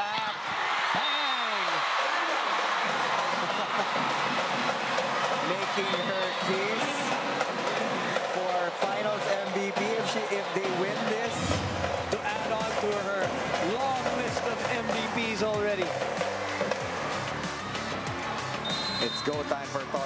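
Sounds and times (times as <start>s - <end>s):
crowd cheering and shouting: 0.0s - 20.0s.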